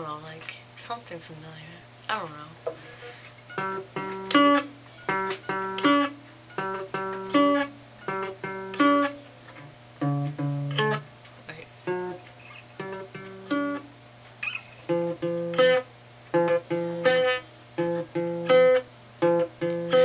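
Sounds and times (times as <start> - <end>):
acoustic guitar strumming: 2.7 - 20.0.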